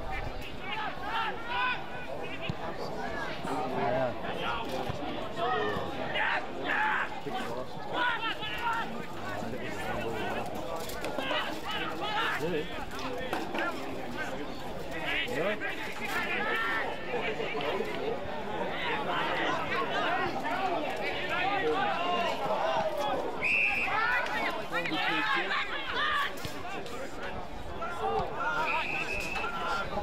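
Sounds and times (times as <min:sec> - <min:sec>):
people shouting and calling: 0:00.2 - 0:02.5, 0:05.4 - 0:12.8, 0:18.6 - 0:30.0.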